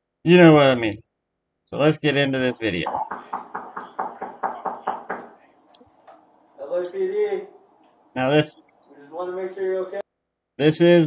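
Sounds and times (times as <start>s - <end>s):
fist knocking on door: 2.9s - 5.4s.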